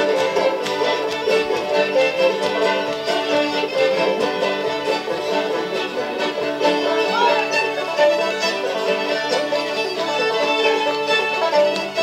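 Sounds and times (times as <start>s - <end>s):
banjo: 0.0s - 12.0s
fiddles bowing melody: 0.0s - 12.0s.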